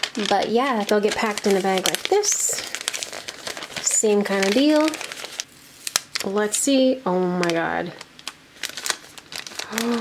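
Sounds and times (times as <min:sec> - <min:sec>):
paper bag crinkling: 0:00.0 - 0:06.6, 0:07.3 - 0:10.0
person humming: 0:09.6 - 0:10.0.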